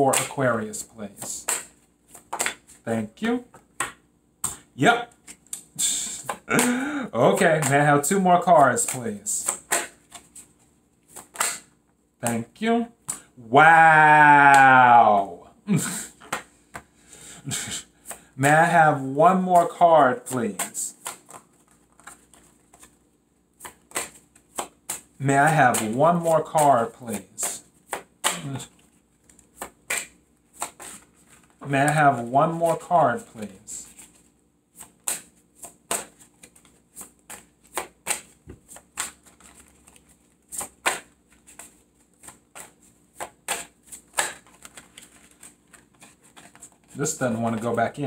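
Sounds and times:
cards being shuffled: 0.1s - 12.5s, 18.0s - 48.0s
card snaps: 29.5s - 31.0s.

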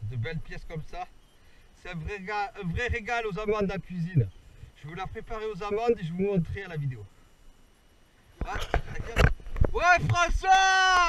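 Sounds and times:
man exclaiming: 9.8s - 11.0s.

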